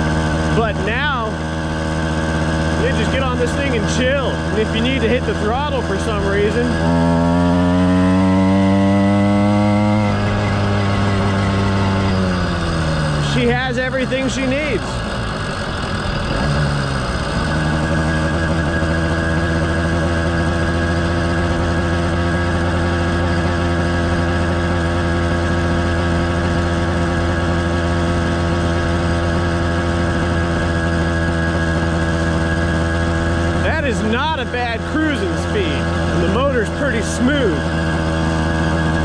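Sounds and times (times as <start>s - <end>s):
two-stroke engine running: 0.0s - 39.0s.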